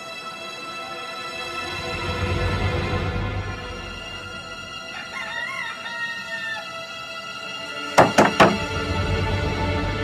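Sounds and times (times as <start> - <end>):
background music: 0.0 - 10.0
rooster crowing: 4.8 - 7.0.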